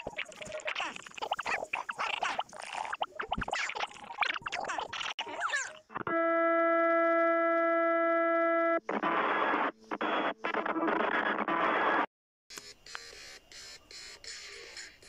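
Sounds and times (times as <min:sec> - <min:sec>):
harsh distorted static noise: 0:00.0 - 0:15.0
loud electronic buzz-tone: 0:05.2 - 0:15.0.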